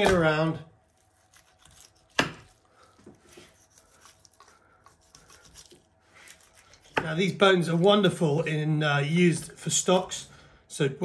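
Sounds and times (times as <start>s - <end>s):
knife scraping and slicing meat: 0.8s - 7.4s.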